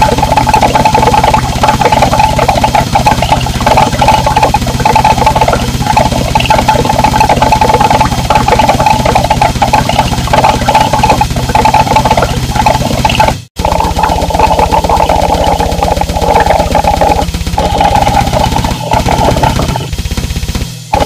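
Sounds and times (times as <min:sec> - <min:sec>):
distorted noise wall: 0:00.0 - 0:21.0
fast low pulse: 0:00.0 - 0:21.0.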